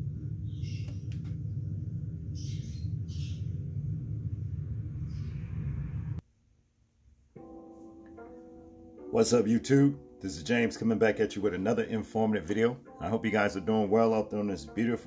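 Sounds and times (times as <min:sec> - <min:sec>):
steady low hum: 0:00.0 - 0:06.2
plucked-string chord music: 0:07.4 - 0:15.0.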